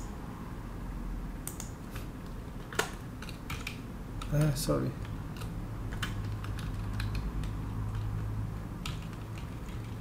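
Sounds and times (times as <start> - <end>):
low steady hum: 0.0 - 10.0
computer keyboard taps: 1.5 - 8.1, 8.8 - 10.0.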